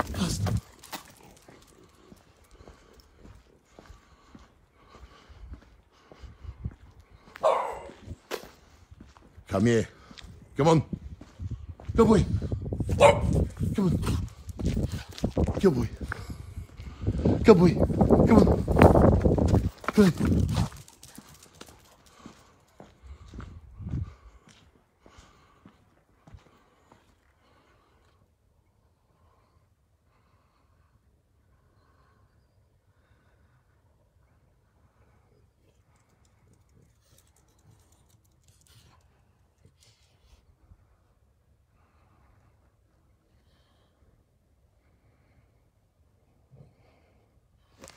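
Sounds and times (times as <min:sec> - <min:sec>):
faint footsteps: 0:00.0 - 0:27.3
dog barking: 0:07.4 - 0:08.0, 0:12.9 - 0:13.5.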